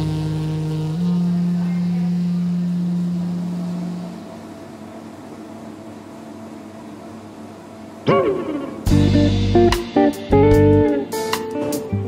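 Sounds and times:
jazz saxophone: 0:00.0 - 0:04.5, 0:08.8 - 0:11.4
coffee shop ambience: 0:00.0 - 0:12.0.

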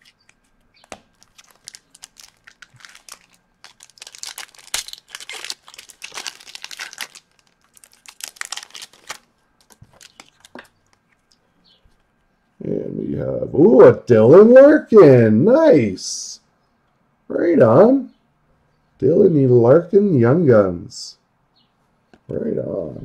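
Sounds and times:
foil wrappers crinkling and tearing: 0:00.0 - 0:11.0
cards rustling as shuffled: 0:00.0 - 0:11.4.

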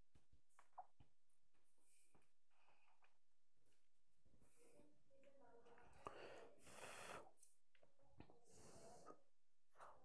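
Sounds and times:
faint puff of breath: 0:06.4 - 0:07.3.

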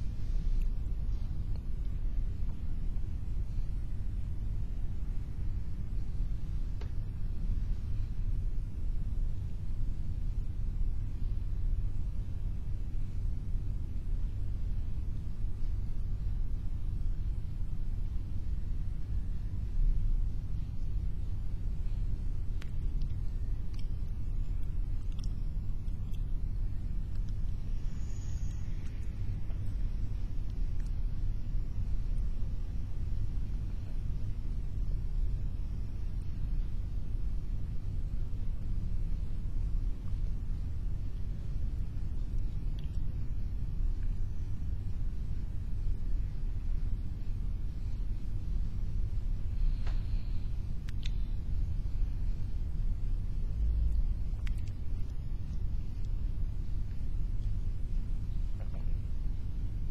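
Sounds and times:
low steady rumble: 0:00.0 - 0:59.9
faint click: 0:50.8 - 0:51.2.

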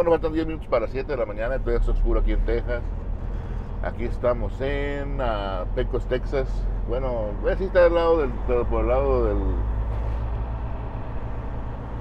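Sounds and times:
diesel truck engine running: 0:00.0 - 0:12.0.

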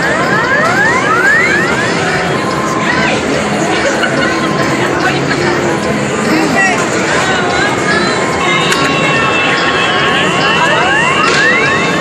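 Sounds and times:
busy arcade din: 0:00.0 - 0:12.0.

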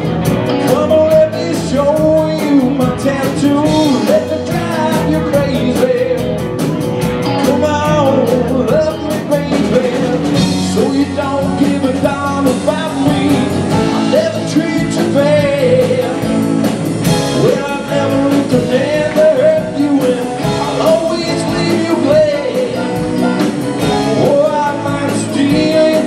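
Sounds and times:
blues rock band playing: 0:00.0 - 0:26.0.

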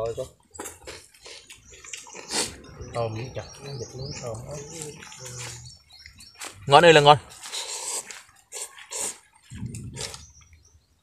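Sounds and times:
chewing: 0:00.4 - 0:03.4, 0:07.3 - 0:10.7.

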